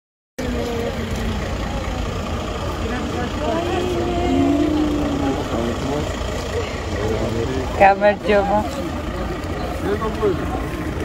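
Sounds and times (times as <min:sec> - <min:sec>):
low roadside rumble: 0:00.4 - 0:11.0
people talking: 0:00.4 - 0:11.0.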